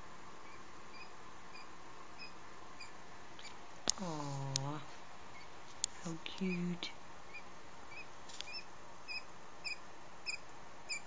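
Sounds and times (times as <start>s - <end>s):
quail chick peeping: 0.3s - 11.0s.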